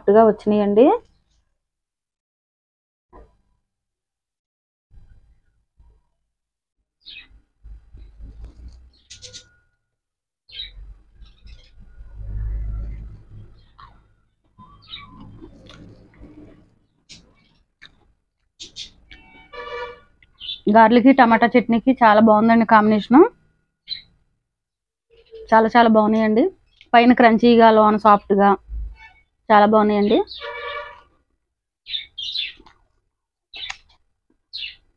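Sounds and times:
small birds chirping: 7.0 - 9.6, 10.5 - 12.0, 12.7 - 16.0, 18.6 - 19.4, 20.2 - 21.4, 23.8 - 24.2, 25.1 - 27.1, 29.0 - 31.0, 31.9 - 32.9, 33.5 - 34.9
person chewing crunchy food: 32.5 - 33.0.

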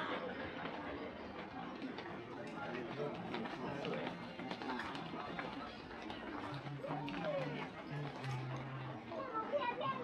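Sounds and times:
passers-by talking indistinctly: 0.0 - 10.0.

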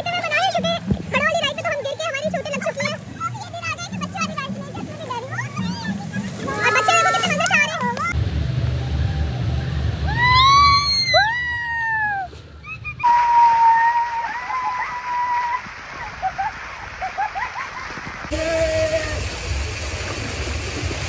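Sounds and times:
water splashing and churning: 0.0 - 10.6, 13.0 - 21.0
people shrieking: 6.4 - 7.4, 10.0 - 15.6.

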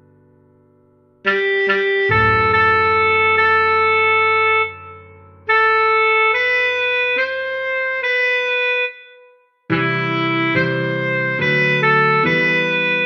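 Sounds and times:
tenor saxophone slow melody: 1.3 - 13.0.

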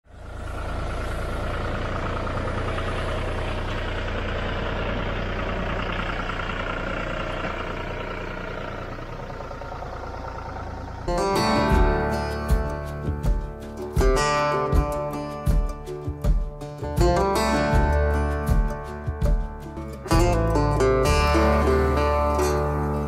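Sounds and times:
tractor diesel engine running: 0.0 - 23.0
acoustic guitar music: 11.1 - 23.0.

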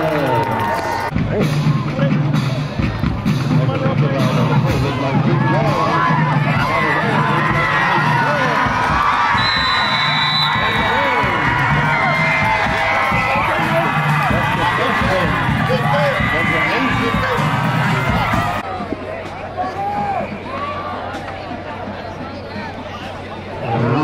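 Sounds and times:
crowd cheering and shouting: 0.0 - 3.2, 4.1 - 24.0
high whistle tone: 9.4 - 11.1.

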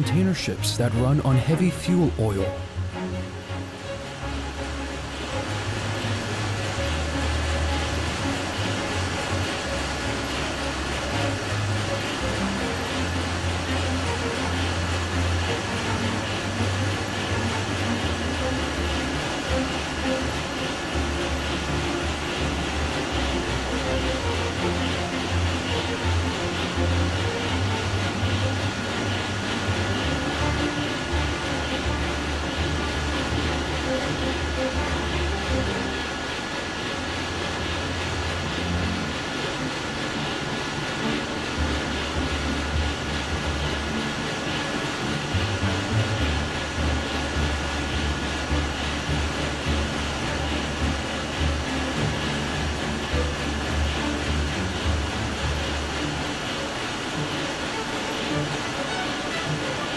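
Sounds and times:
marine diesel engine rumble: 0.0 - 59.9
high-pitched machine whines: 2.0 - 59.9.

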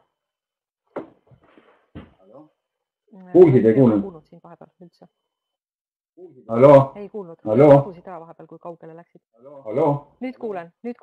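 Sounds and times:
man talking over audio link: 3.4 - 4.0, 6.2 - 7.9.

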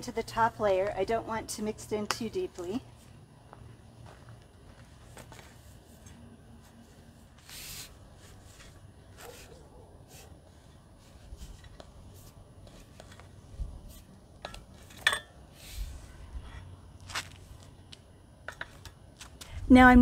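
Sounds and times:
garden fork scraping soil: 5.0 - 14.1.

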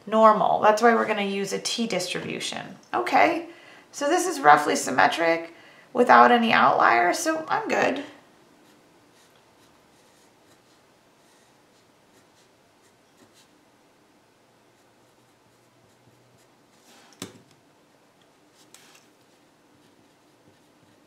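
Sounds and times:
pen scratching on paper: 8.6 - 13.6, 18.5 - 21.0.

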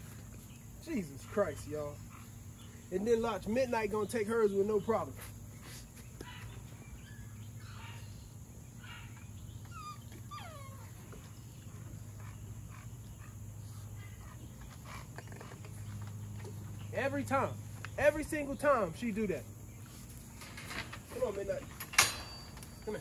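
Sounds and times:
dog whining: 8.8 - 11.4.

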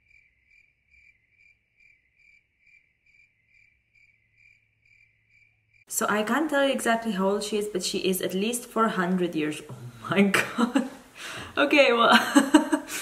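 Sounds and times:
faint cricket chirping: 0.0 - 5.9.

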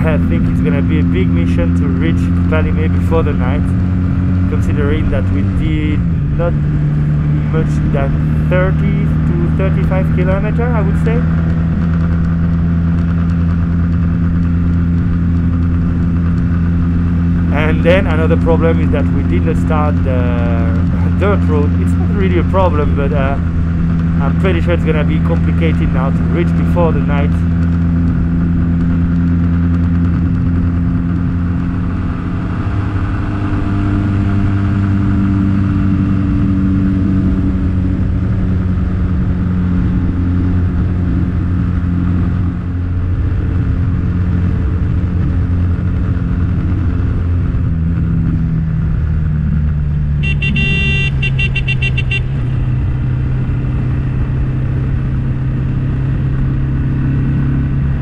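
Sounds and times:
motorcycle engine running: 0.0 - 58.0
vehicle horn: 50.2 - 52.6.

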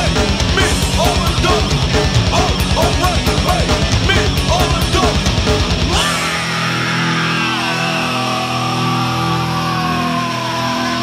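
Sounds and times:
held bass notes: 0.0 - 10.3
sustained distorted guitar chord: 0.0 - 11.0.

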